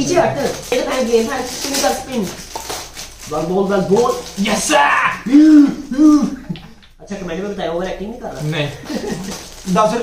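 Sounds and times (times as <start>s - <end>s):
people talking: 0.0s - 2.4s, 3.3s - 10.0s.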